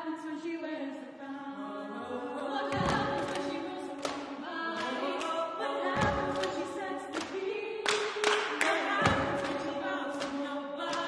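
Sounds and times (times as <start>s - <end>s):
women singing a cappella: 0.0s - 11.0s.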